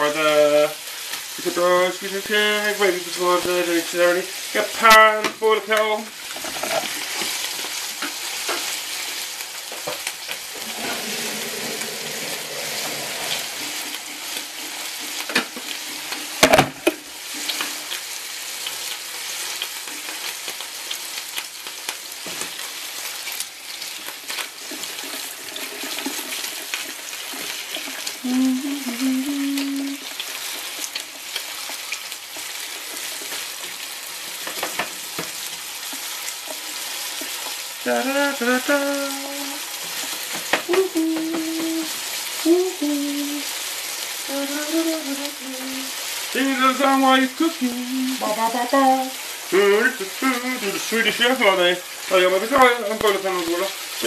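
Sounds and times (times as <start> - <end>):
food sizzling in a pan: 0.0 - 54.0
tongs working in pan: 1.5 - 22.6, 29.4 - 43.4.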